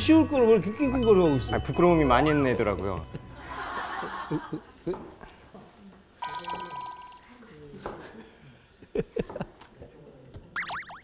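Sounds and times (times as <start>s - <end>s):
electronic ringing trill: 6.2s - 7.4s
soft laughter and chuckling: 7.5s - 9.9s.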